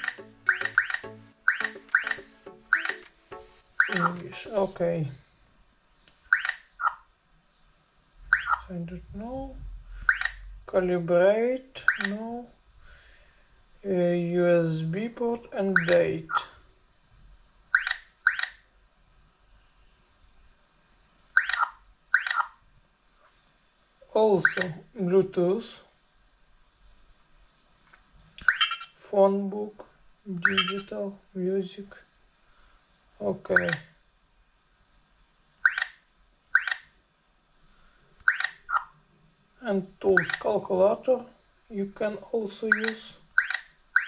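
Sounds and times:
electronic touchscreen taps: 0.0s - 4.6s.

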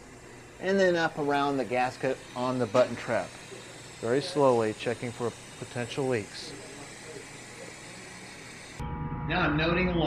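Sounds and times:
steady hiss: 0.0s - 8.8s.

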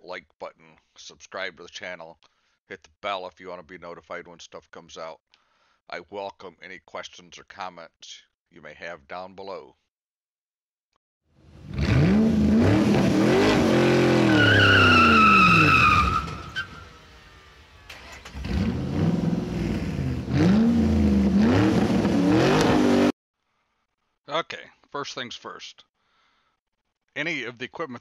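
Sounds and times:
car engine revving: 11.4s - 23.1s
tires squealing: 11.7s - 17.2s.

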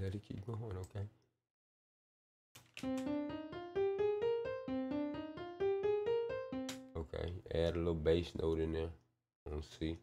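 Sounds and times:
piano single notes along scale: 2.8s - 7.1s.

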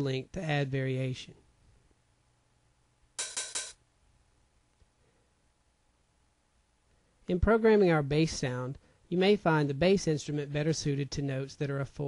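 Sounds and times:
hi-hat hits: 3.2s - 3.8s.

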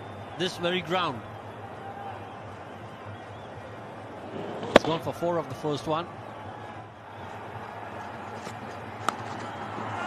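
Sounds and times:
stadium crowd noise: 0.0s - 10.0s
cricket bat hitting ball: 4.6s - 5.0s.

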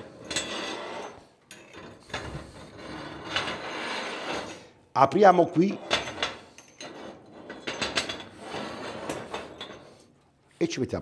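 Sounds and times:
metal clinks and scrapes: 0.0s - 4.7s, 5.7s - 10.0s.

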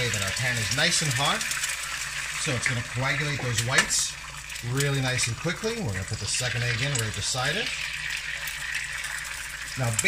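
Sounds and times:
eggs sizzling in oil: 0.0s - 10.0s.

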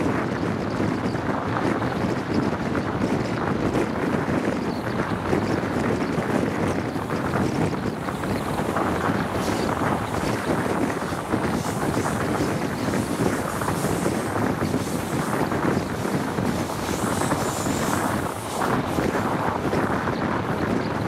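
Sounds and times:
train running on rails: 0.0s - 21.0s
wind rushing over microphone: 0.0s - 21.0s.

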